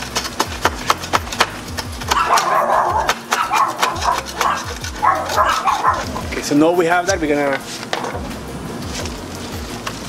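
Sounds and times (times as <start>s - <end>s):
hand tool scraping metal frame: 0.0s - 10.0s.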